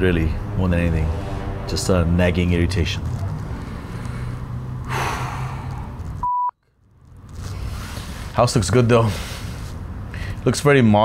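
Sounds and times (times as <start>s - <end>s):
breathy sigh: 3.8s - 6.0s
electronic beep: 6.2s - 6.5s.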